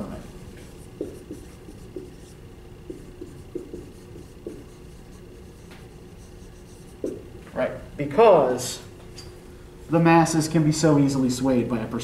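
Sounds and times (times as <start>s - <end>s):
marker squeaking on whiteboard: 0.4s - 7.3s.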